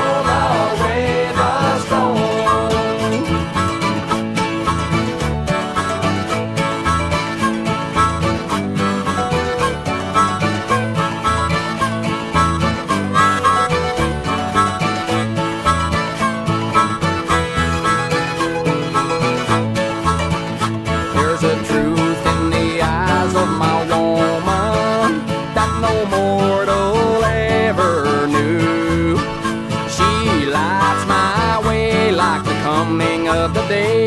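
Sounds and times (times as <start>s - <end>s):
country-rock instrumental: 0.0s - 34.0s
plucked guitar and banjo: 0.0s - 34.0s.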